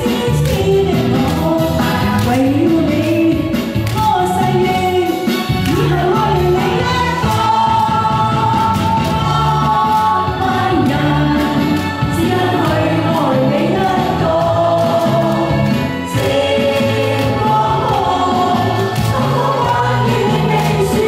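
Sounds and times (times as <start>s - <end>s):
instrumental accompaniment with bass: 0.0s - 21.0s
woman singing into microphone: 0.0s - 21.0s.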